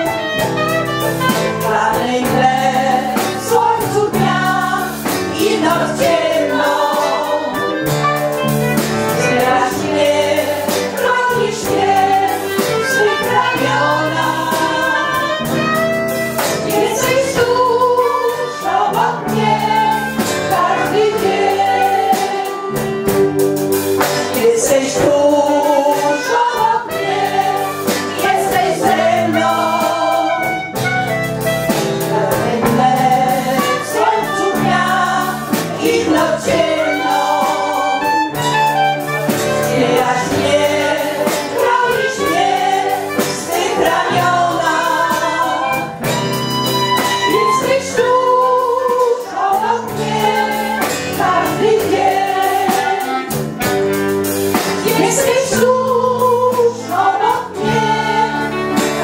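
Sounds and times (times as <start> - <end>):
choir singing: 0.0 - 53.6, 54.6 - 59.0.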